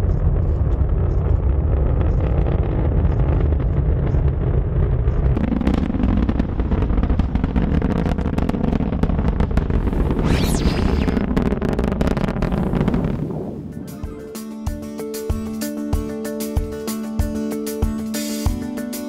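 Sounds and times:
rocket engines rumbling: 0.0s - 14.3s.

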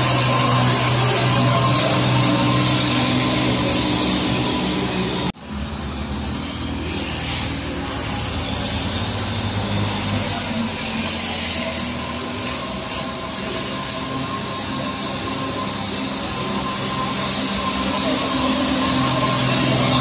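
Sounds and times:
truck diesel engine approaching: 0.0s - 20.0s
trucks passing close by: 0.0s - 20.0s.

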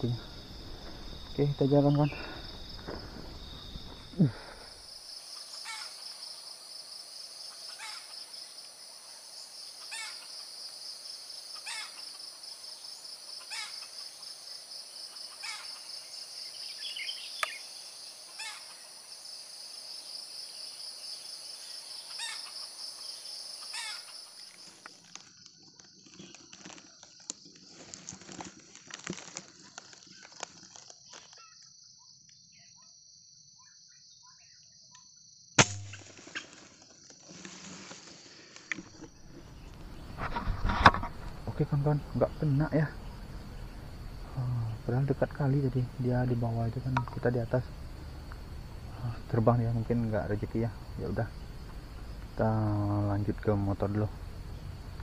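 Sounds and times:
insect drone: 0.0s - 55.0s
sharp insect chirps: 0.0s - 55.0s.

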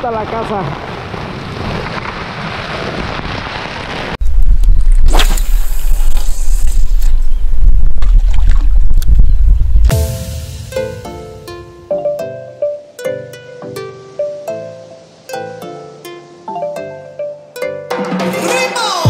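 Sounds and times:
storm wind on microphone: 0.2s - 9.9s
deep rumble with whoosh: 4.0s - 10.0s
plucked ukulele music: 9.9s - 19.0s.

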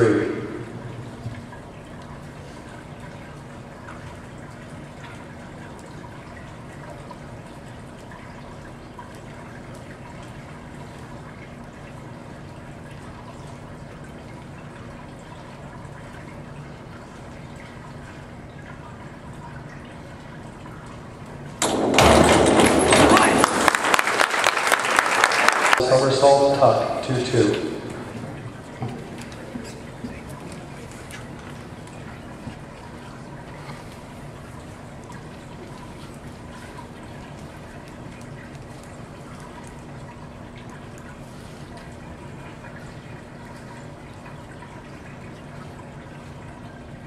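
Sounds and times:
low hum of indoor pool hall: 0.0s - 47.0s
spectators applauding: 22.4s - 26.7s.

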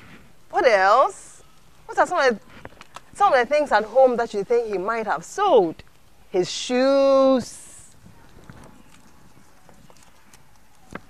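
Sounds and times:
paper rustling: 7.9s - 11.0s.

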